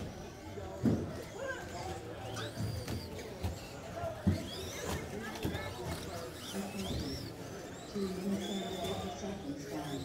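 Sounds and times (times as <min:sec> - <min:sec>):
background voices in a hall: 0:00.0 - 0:10.0
electric toy race cars running: 0:00.0 - 0:10.0.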